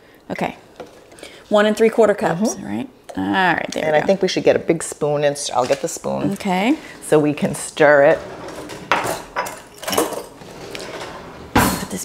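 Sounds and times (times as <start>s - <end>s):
rustling of things handled: 5.4s - 11.8s.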